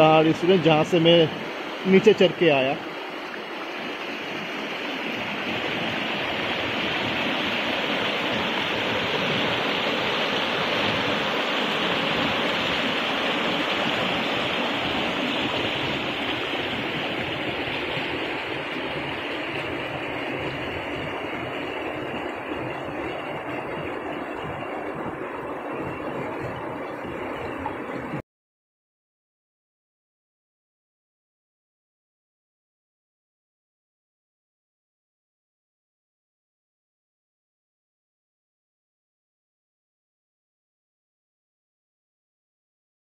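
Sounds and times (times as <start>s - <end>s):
water rushing over rocks: 0.0s - 28.2s.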